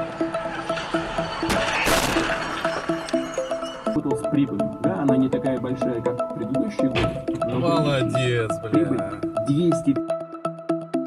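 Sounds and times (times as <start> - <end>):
music with repeated short notes: 2.9 - 11.0.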